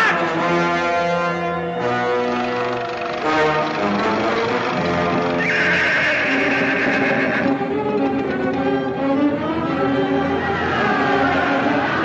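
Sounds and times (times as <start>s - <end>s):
orchestral film score: 0.0s - 12.0s
horse neighing: 5.3s - 7.7s.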